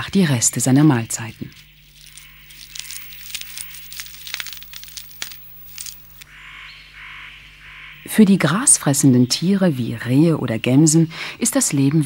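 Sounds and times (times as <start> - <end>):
steady soft hiss: 0.0 - 6.3
squirrel tearing cone scales: 0.8 - 6.3.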